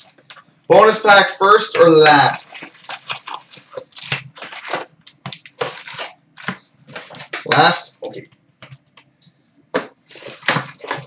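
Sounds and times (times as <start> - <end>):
card packs rustling and crinkling: 1.8 - 8.8, 9.8 - 11.0.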